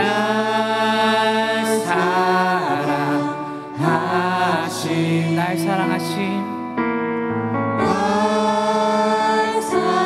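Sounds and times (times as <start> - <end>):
group singing worship chorus: 0.0 - 5.9, 7.8 - 10.0
instrumental accompaniment: 0.0 - 10.0.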